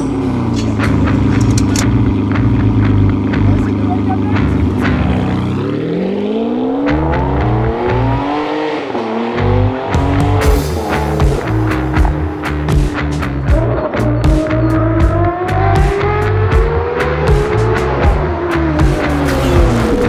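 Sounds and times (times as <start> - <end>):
car engine idling and revving: 0.0 - 20.0.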